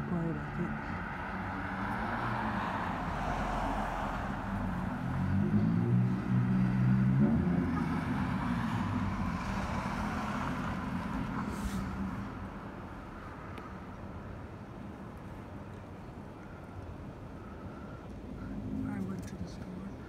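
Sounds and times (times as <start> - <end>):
traffic noise: 0.0 - 20.0
vehicle engine: 0.0 - 20.0.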